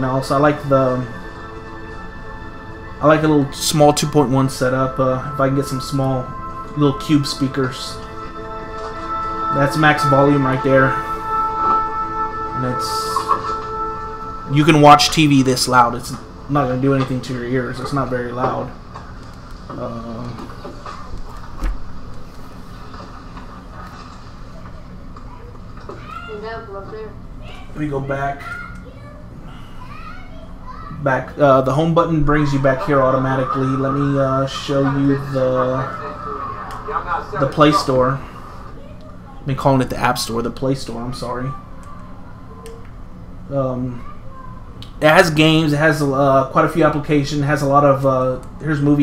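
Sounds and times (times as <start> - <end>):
film soundtrack music: 0.0 - 25.2, 32.1 - 38.8.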